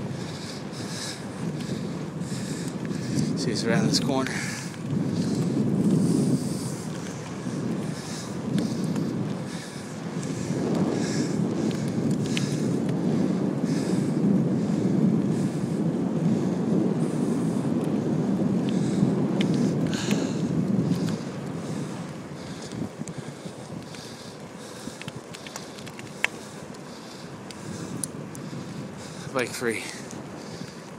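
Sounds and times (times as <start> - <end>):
wind buffeting microphone: 0.0 - 30.9.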